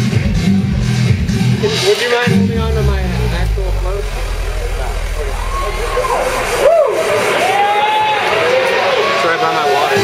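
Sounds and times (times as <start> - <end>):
dance music: 0.0 - 8.5
deep bass note: 2.3 - 8.2
gliding vocal-like lines: 2.7 - 8.0.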